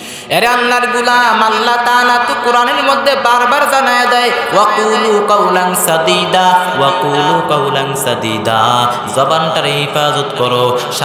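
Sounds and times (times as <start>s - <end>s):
man chanting melodically: 0.3s - 11.0s.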